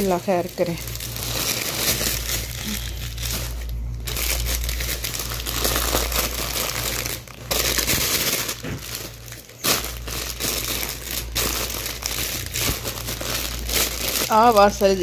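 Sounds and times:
plastic bag crinkling: 0.0s - 15.0s.

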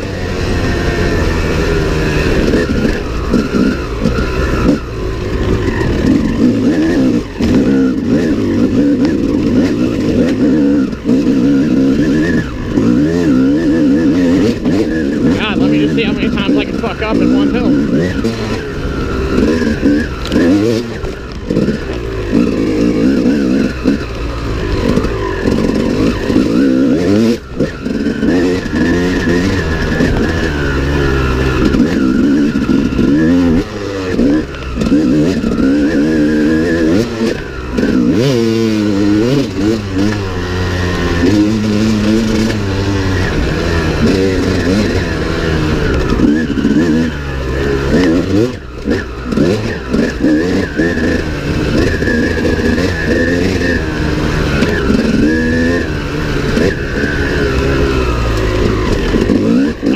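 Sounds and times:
dirt bike engine revving: 0.0s - 59.9s.

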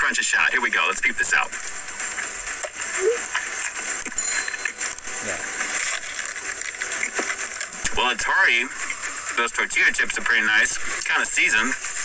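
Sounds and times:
chewing: 2.6s - 7.8s.

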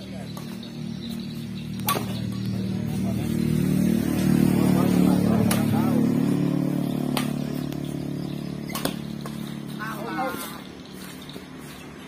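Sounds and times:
motor vehicle engine hum: 0.0s - 12.0s
voices calling out: 0.0s - 12.0s
badminton racket hitting shuttlecock: 1.8s - 2.5s, 4.9s - 7.7s, 8.6s - 9.9s.

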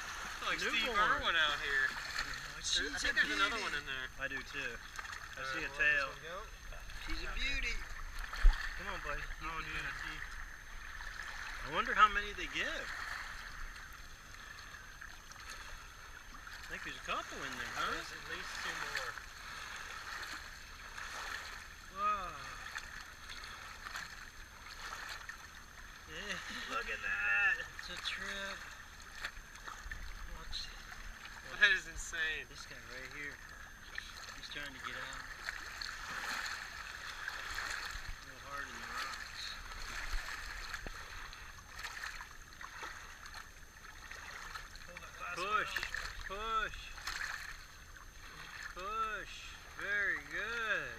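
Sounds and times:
water lapping over rocks: 0.0s - 50.9s.

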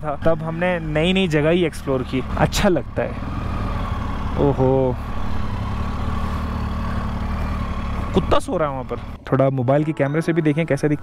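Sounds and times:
motorcycle engine at low revs: 0.0s - 9.2s.

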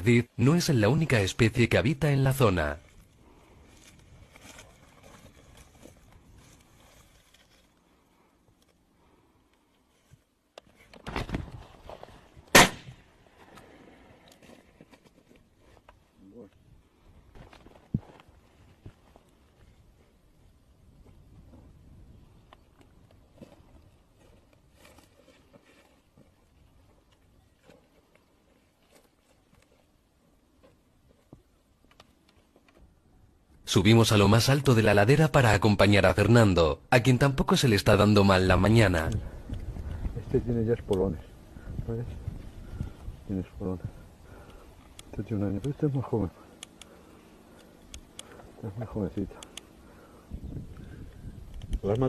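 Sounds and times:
scuffs and rustles: 2.6s - 8.0s, 23.2s - 31.5s
footsteps through dry grass: 2.6s - 8.1s, 17.2s - 31.6s, 41.4s - 43.3s.

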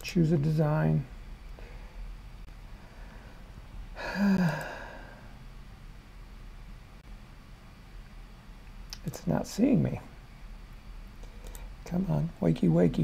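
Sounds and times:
faint low hum: 0.0s - 13.0s
man sighing: 4.0s - 5.4s.

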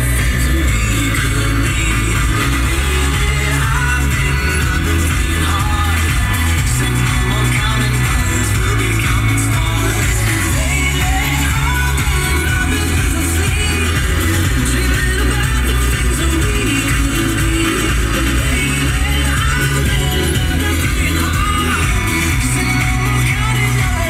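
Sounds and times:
pop song on car radio: 0.0s - 24.0s.

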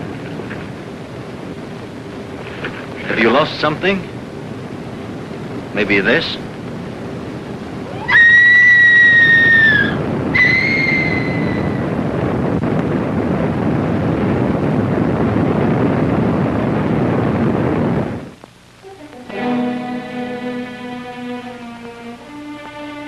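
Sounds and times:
woman screaming: 7.9s - 11.7s
orchestral music: 18.8s - 23.0s.

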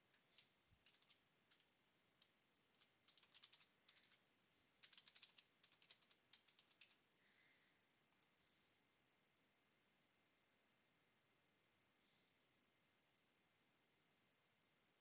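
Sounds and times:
faint keyboard typing: 0.0s - 7.2s.

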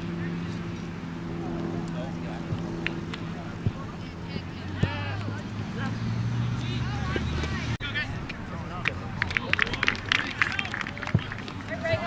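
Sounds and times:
voices: 1.4s - 12.0s
people clapping and slapping hands: 8.8s - 12.0s.

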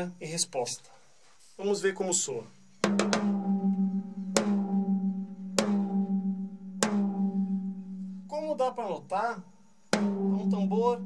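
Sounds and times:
tom-tom drum hits ringing: 2.9s - 8.1s, 10.0s - 11.0s.

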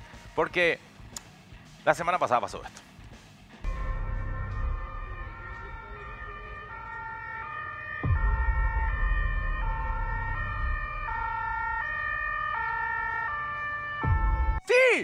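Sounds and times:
two-tone emergency siren: 3.7s - 14.6s.

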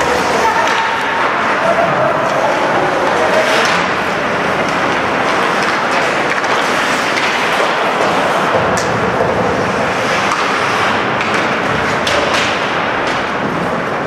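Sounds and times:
arena noise: 0.0s - 14.0s
skates on ice: 0.0s - 14.0s
stick hitting puck: 0.1s - 14.0s.

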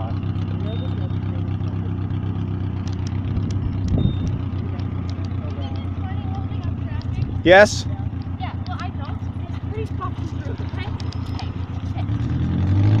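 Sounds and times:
vehicle engine idling: 0.0s - 13.0s.

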